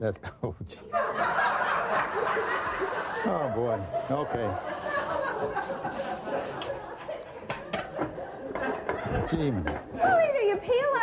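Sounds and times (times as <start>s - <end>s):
laughter: 0.2s - 9.6s.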